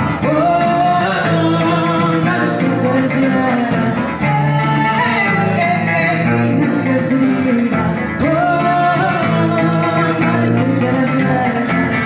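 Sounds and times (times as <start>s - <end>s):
guitars strummed and picked: 0.0s - 12.0s
woman singing: 0.0s - 12.0s.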